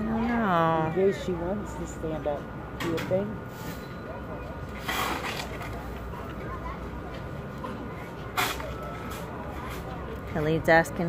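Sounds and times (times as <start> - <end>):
low outdoor background rumble: 0.0 - 11.0
sharp scrape or clank: 4.8 - 5.6.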